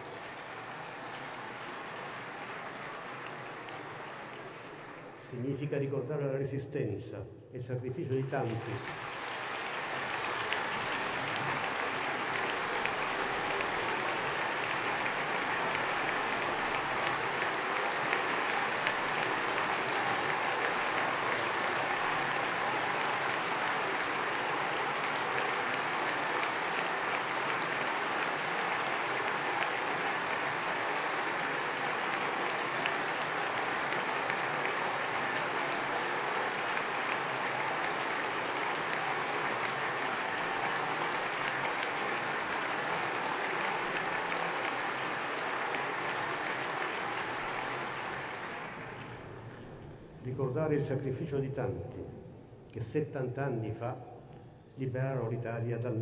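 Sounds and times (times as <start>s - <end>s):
large crowd applauding: 0.0s - 5.9s, 8.0s - 50.5s.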